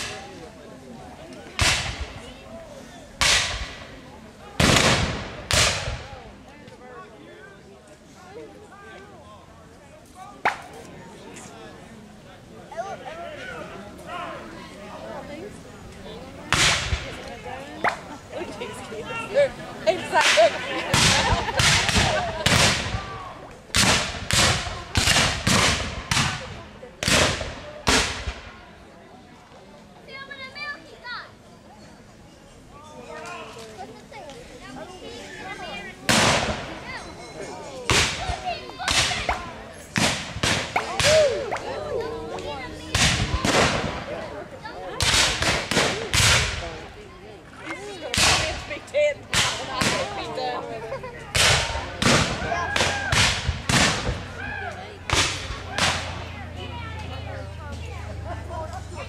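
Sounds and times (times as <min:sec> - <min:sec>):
muskets firing with echoes: 0:04.6 - 0:06.1, 0:23.7 - 0:28.6, 0:40.0 - 0:41.2, 0:42.9 - 0:44.1, 0:45.0 - 0:46.6, 0:51.4 - 0:54.2.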